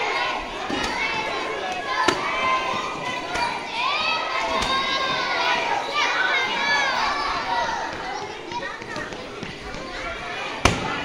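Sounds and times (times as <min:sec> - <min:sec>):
children shouting: 0:00.0 - 0:11.0.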